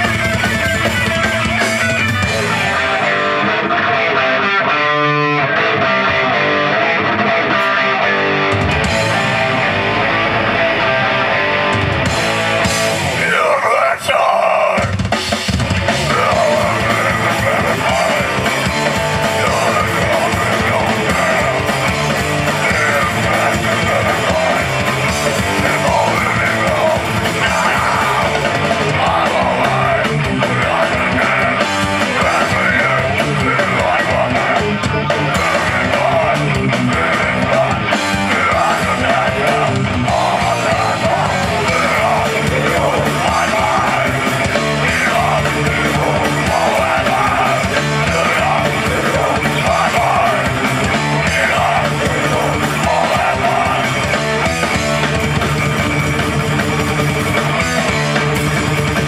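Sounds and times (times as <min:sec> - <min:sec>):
electric guitars riffing: 0:00.0 - 0:59.0
heavy metal band playing live: 0:00.0 - 0:59.0
person yelling vocals: 0:13.2 - 0:15.0, 0:25.4 - 0:34.7.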